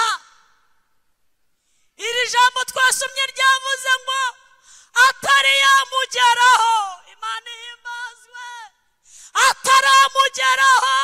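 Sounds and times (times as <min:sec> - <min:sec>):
woman's amplified voice: 0:02.0 - 0:11.0.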